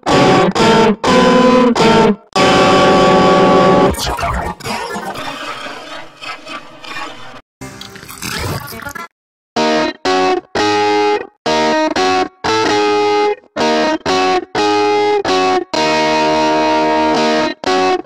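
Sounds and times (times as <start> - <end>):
distorted electric guitar: 0.0 - 6.8, 9.6 - 18.0.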